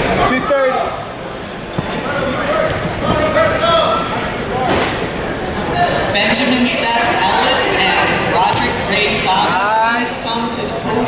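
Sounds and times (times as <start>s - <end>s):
echoing crowd noise: 0.0s - 11.0s.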